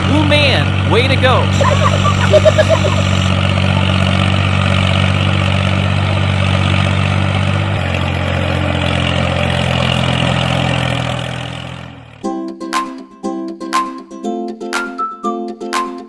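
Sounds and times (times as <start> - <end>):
tractor engine running: 0.0 - 12.2.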